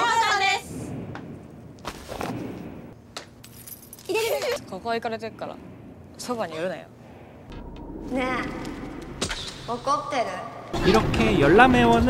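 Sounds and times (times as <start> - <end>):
light metallic jingling: 3.4 - 4.6
woman speaking: 9.7 - 10.6.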